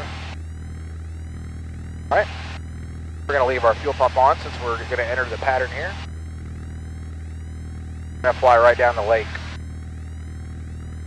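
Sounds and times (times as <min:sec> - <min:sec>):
muffled aircraft engine drone: 0:00.0 - 0:11.0.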